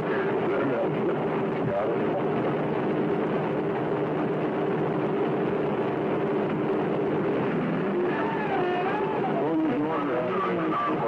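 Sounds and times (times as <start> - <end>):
steady roar of noise: 0.0 - 11.0.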